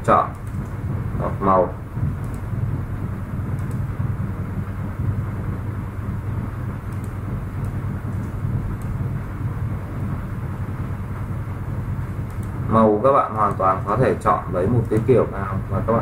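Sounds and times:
low room rumble: 0.0s - 16.0s
faint clicks: 0.3s - 0.8s, 2.2s - 2.5s, 3.6s - 3.9s, 6.9s - 9.0s, 12.2s - 12.6s.

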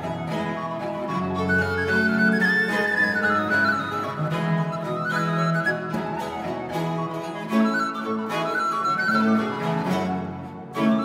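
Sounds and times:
low bowed strings: 0.0s - 11.0s
plucked cittern: 0.0s - 11.0s
recorder melody: 0.0s - 11.0s
violin: 0.0s - 11.0s.

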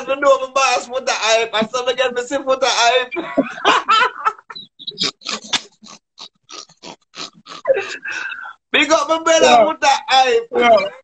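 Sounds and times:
man laughing: 3.1s - 6.4s.

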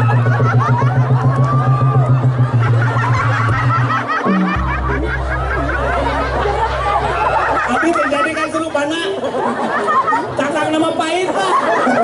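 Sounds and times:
audience laughter: 0.0s - 12.0s
live stage music: 0.0s - 12.0s
low held note: 0.1s - 7.8s.

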